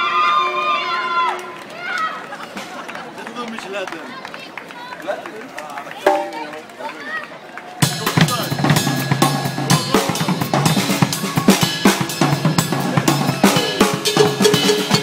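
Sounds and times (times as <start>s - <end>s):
spectators shouting and chattering: 0.0s - 15.0s
drum kit playing: 6.1s - 6.6s, 7.8s - 15.0s.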